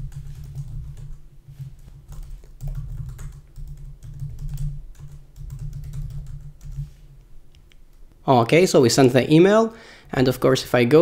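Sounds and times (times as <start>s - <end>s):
typing on computer keyboard: 0.0s - 6.9s.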